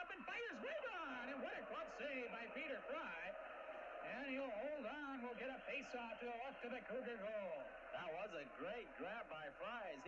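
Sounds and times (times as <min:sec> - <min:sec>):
man commentating: 0:00.0 - 0:10.0.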